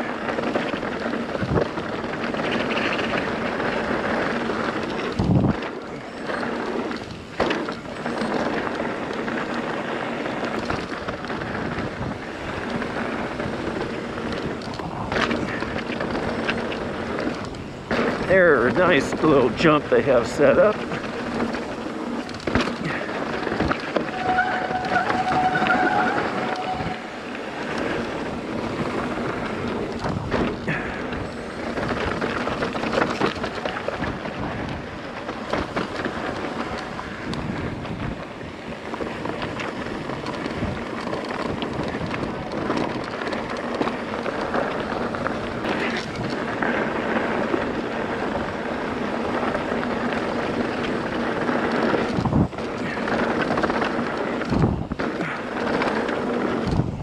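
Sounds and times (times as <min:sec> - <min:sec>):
wind on microphone: 0:00.0 - 0:06.1, 0:09.8 - 0:18.3, 0:20.8 - 0:57.0
bike rattling over bumps: 0:00.0 - 0:26.1, 0:27.1 - 0:57.0
short squeal: 0:24.0 - 0:27.4.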